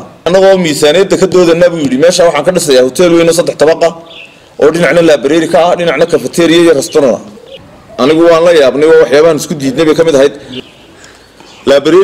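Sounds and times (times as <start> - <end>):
man talking: 0.0 - 7.4, 8.0 - 10.7, 11.6 - 12.0
dove cooing: 6.8 - 8.3.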